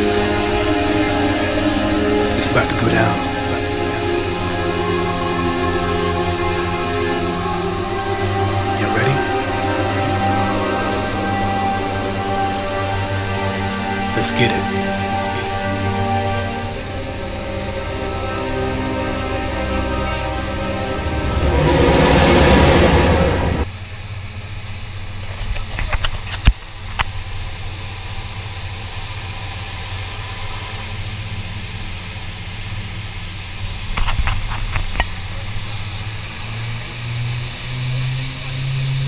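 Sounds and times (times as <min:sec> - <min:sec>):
turboprop engines droning: 0:00.0 - 0:25.2.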